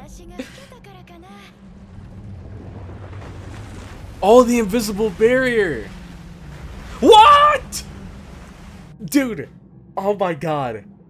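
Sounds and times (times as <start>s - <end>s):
steady rushing noise: 1.6s - 9.0s.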